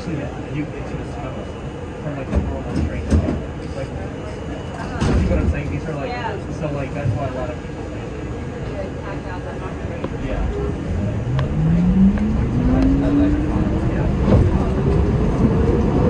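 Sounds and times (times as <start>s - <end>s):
indistinct passenger voices: 0.0s - 16.0s
subway car hum: 0.0s - 16.0s.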